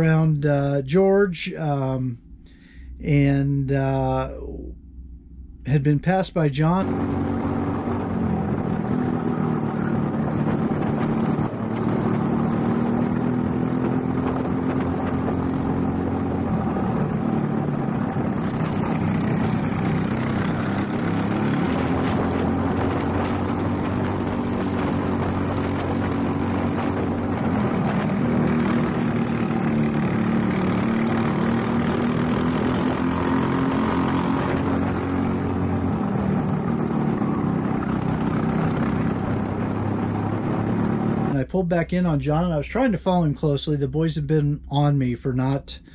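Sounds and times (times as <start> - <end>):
kart engine revving: 6.8 - 41.4.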